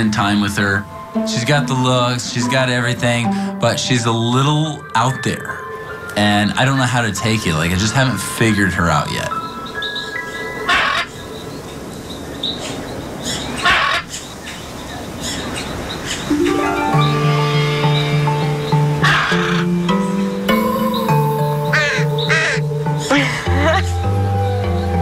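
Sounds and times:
background music: 0.0s - 11.6s, 16.3s - 25.0s
raven cawing: 10.7s - 11.2s, 13.6s - 14.2s, 19.0s - 19.8s, 20.6s - 23.9s.

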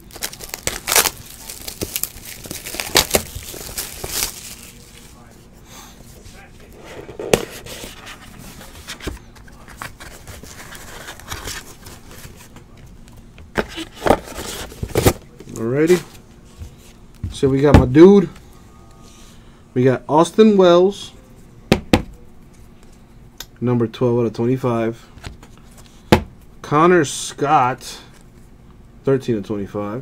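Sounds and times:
plastic wrap crinkling and tearing: 0.0s - 5.2s.

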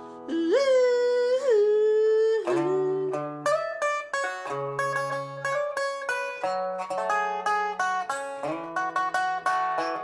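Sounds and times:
resonator guitar: 0.0s - 10.0s.

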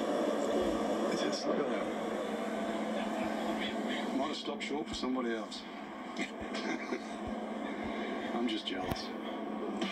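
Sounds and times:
faint television talk: 0.2s - 9.9s.

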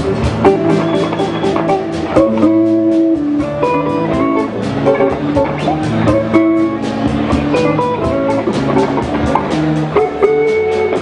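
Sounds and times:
drum kit steady beat: 0.0s - 11.0s
electric blues band playing: 0.0s - 11.0s
electric guitars: 0.0s - 11.0s.

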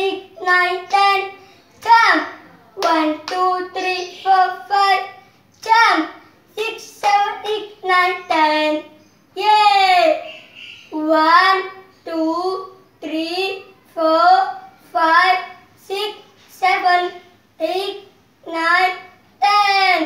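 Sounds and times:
boy singing: 0.0s - 10.3s, 10.9s - 20.0s.

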